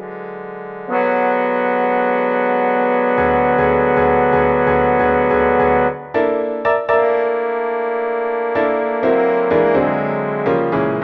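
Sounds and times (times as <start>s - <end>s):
synthesized male chorus chord: 0.0s - 6.0s.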